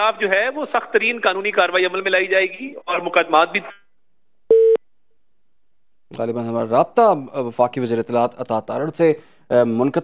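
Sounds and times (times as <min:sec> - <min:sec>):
short telephone line beep: 0:04.5 - 0:04.8.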